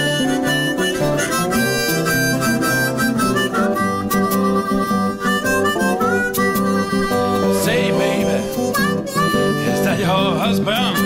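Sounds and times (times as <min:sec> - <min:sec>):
acoustic guitar accompaniment: 0:00.0 - 0:11.0
harmonica bent notes: 0:00.0 - 0:11.0.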